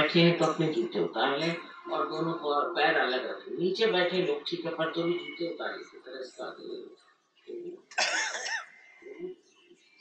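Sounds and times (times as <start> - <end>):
woman coughing: 8.0 - 8.7.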